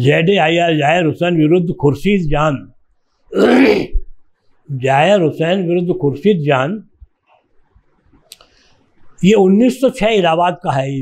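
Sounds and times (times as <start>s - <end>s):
man speaking: 0.0s - 2.7s, 4.7s - 6.9s, 9.2s - 11.0s
man clearing his throat: 3.3s - 4.0s.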